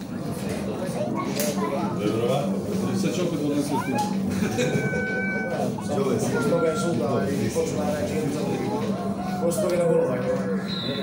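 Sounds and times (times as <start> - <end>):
children and spectators chattering: 0.0 - 11.0
high voice calling: 3.6 - 7.2.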